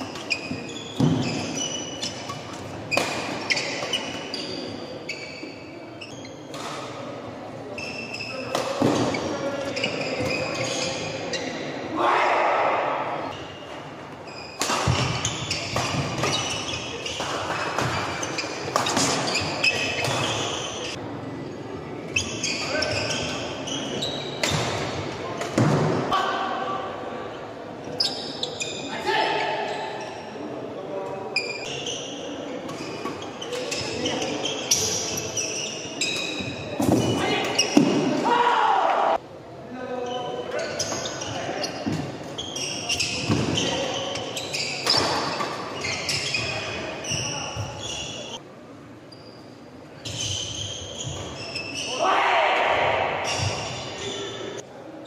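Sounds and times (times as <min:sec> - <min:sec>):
racket hitting shuttlecock: 0:02.2 - 0:04.0, 0:14.6 - 0:16.5.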